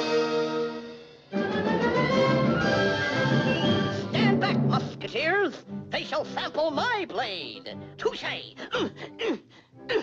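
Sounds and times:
orchestral strings and brass: 0:00.0 - 0:06.9.

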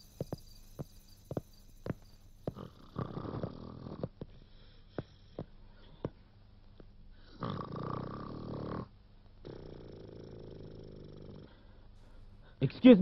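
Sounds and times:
man snoring loudly: 0:02.5 - 0:04.2, 0:07.3 - 0:11.6.

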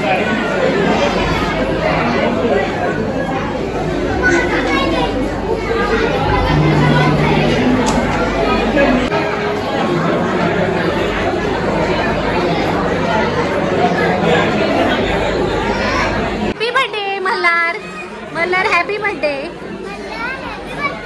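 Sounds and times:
close voices talking: 0:00.0 - 0:21.0
crowd chattering in a hall: 0:00.0 - 0:21.0.

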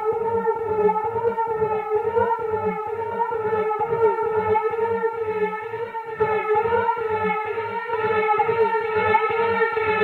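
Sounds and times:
pulsing kick drum: 0:00.0 - 0:10.0.

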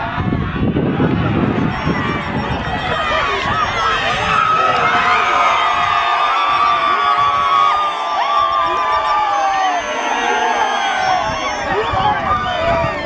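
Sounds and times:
crowd cheering and shouting: 0:00.0 - 0:13.0
long high cry: 0:00.0 - 0:13.0.

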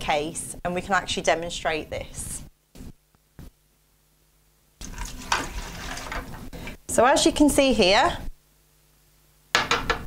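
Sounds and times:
liquid pouring into hopper: 0:04.8 - 0:06.4.

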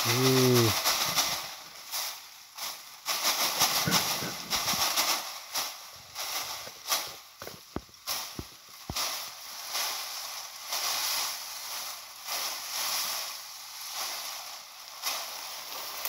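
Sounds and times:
grass stalks rustling: 0:00.0 - 0:16.0.

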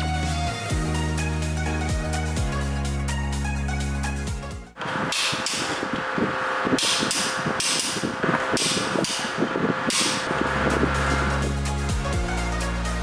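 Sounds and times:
background music: 0:00.0 - 0:04.8, 0:10.2 - 0:13.0.

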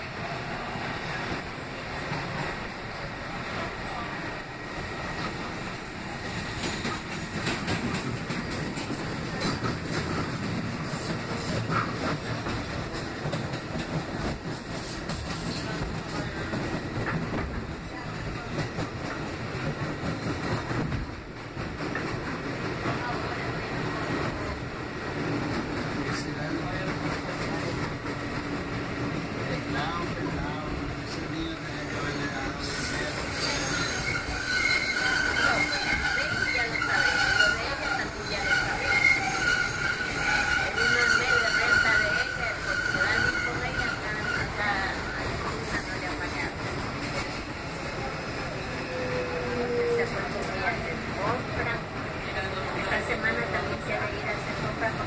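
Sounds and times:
wheels rumbling and rattling on rail: 0:00.0 - 0:55.0
rail joints clicking: 0:05.1 - 0:48.7
wheels squealing: 0:32.6 - 0:46.3.

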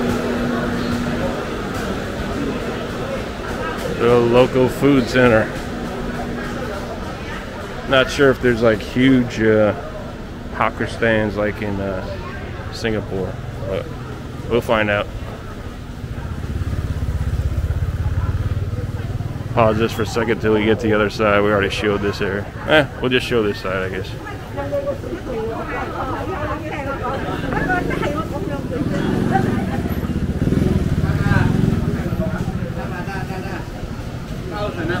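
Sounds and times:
motor scooter passing: 0:00.0 - 0:22.8, 0:24.0 - 0:35.0
people's voices: 0:00.0 - 0:35.0.

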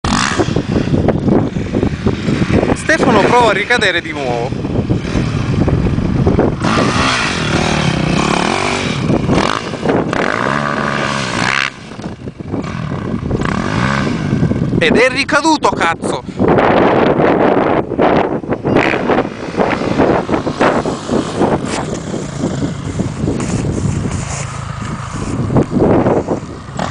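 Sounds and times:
dirt bike engine running: 0:00.0 - 0:15.6, 0:16.4 - 0:26.9
wind buffeting microphone: 0:00.0 - 0:26.9.

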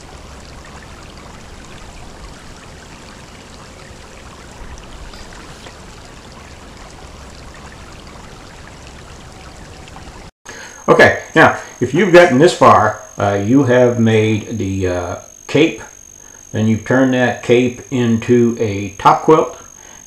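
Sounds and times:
creek water running over rocks: 0:00.0 - 0:10.3.

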